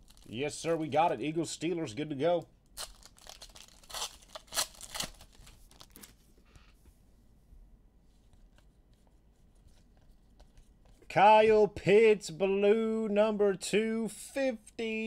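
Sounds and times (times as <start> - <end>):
foil wrapper tearing and crinkling: 0.0 - 0.4, 2.8 - 6.1.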